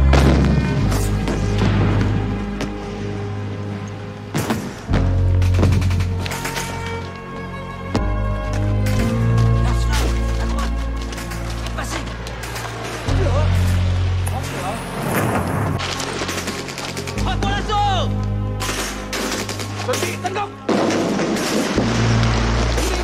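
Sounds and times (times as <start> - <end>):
rifle and machine-gun fire: 15.8 - 17.3, 18.6 - 23.0.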